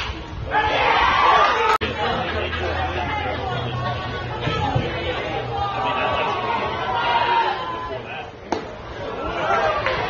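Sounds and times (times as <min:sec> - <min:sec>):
crowd chatter: 0:00.0 - 0:10.0
spectators shouting: 0:04.3 - 0:10.0.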